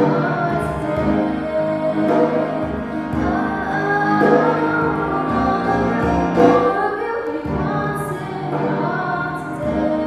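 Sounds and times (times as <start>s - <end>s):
piano: 0.0s - 10.0s
woman singing into a microphone: 0.0s - 10.0s
djembe drum: 2.0s - 6.8s.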